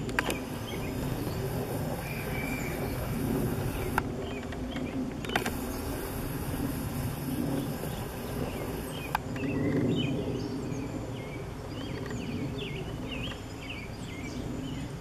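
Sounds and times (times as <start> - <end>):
bird chirps: 0.0 - 6.3, 7.3 - 14.9
sharp clicks: 0.0 - 9.5.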